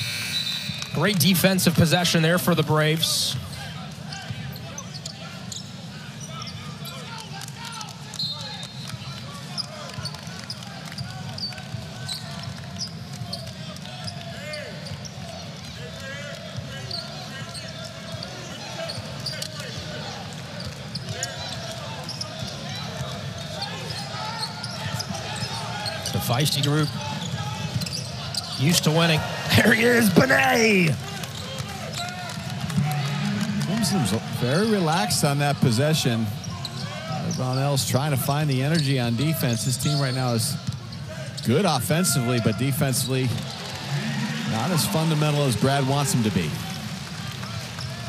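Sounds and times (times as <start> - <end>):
sneaker squeaks: 0.0 - 1.0, 3.4 - 15.9, 16.7 - 32.2, 36.4 - 44.5
crowd murmur: 32.6 - 35.2, 43.3 - 48.0.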